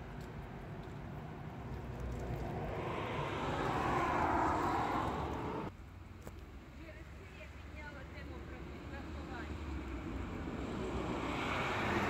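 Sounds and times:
road vehicle passing: 1.0s - 5.7s, 8.2s - 12.0s.

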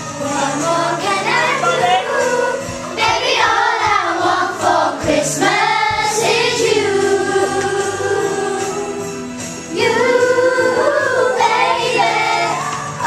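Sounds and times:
girls singing together: 0.0s - 13.0s.

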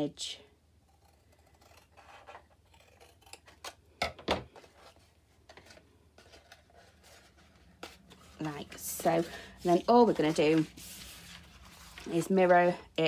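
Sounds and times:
scissors cutting cardstock: 0.9s - 3.8s.

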